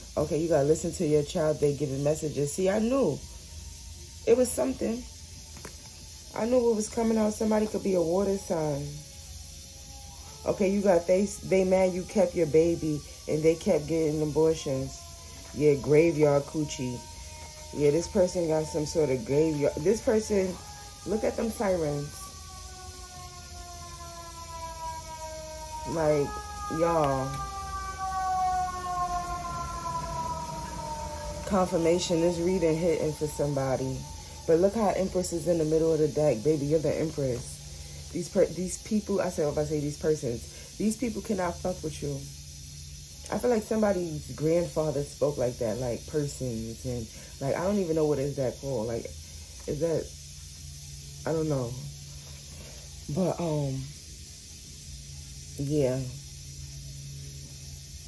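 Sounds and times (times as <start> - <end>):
siren wailing: 0.0 - 42.3
even hiss: 0.0 - 58.0
steady low hum: 0.0 - 58.0.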